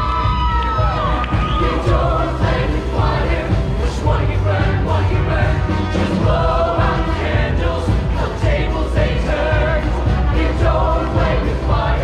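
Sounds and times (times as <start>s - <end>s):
choir singing: 1.1s - 12.0s.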